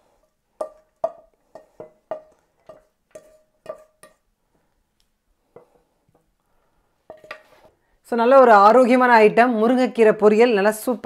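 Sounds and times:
spatula knocking on frying pan: 0.6 - 4.2.

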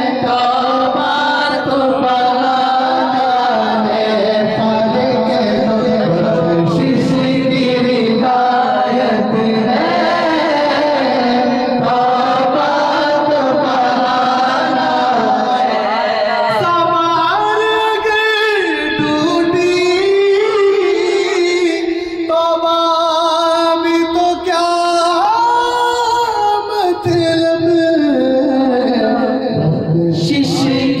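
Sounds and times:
man chanting devotional poem: 0.0 - 31.0
man singing a long high note: 0.0 - 31.0.

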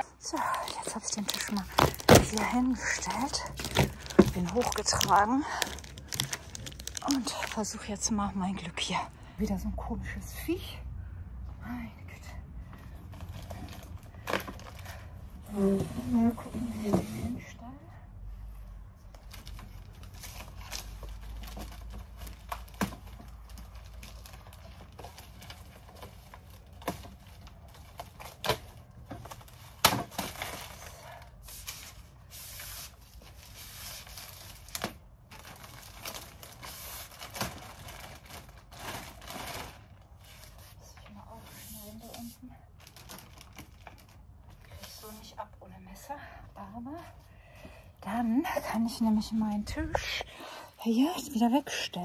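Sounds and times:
plastic sheet rustling and crinkling: 0.2 - 9.0, 19.0 - 45.5.

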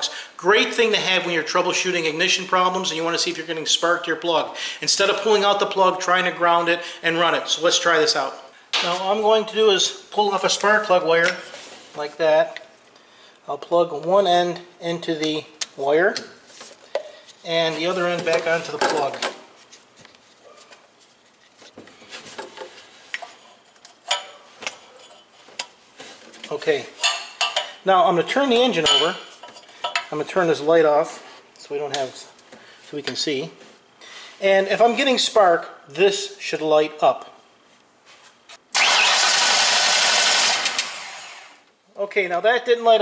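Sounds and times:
starter motor cranking engine: 38.7 - 41.6.

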